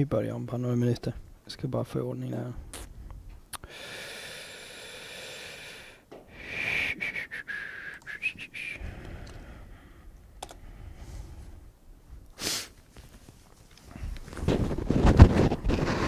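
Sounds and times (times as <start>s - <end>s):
whistling breathing into microphone: 6.3s - 9.6s
computer clicks: 10.4s - 10.6s.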